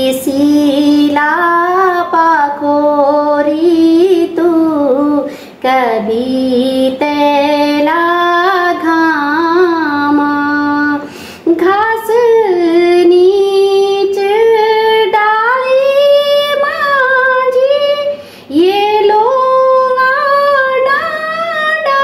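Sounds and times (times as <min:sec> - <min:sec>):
woman singing folk song: 0:00.0 - 0:22.0.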